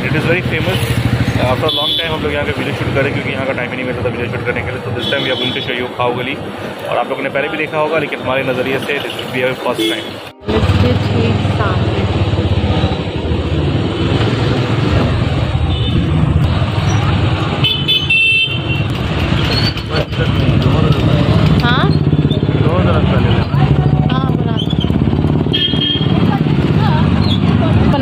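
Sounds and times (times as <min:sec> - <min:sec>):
motorbike engine running: 0:00.0 - 0:04.4, 0:10.4 - 0:28.0
vehicle horns honking: 0:01.4 - 0:02.6, 0:05.0 - 0:05.9, 0:09.6 - 0:11.8, 0:15.6 - 0:19.8, 0:25.3 - 0:27.4.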